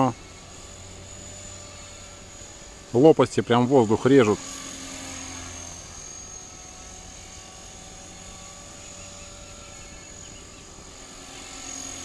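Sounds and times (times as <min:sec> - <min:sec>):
model helicopter rotor whir: 0:00.0 - 0:12.0.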